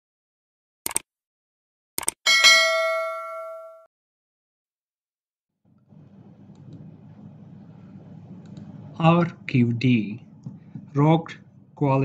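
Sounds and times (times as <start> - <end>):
bright bell ding: 2.3 - 3.9.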